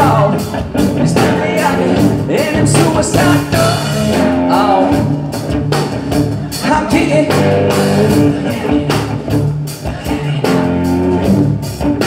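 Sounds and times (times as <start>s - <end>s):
electric guitar: 0.0s - 12.0s
live band music: 0.0s - 12.0s.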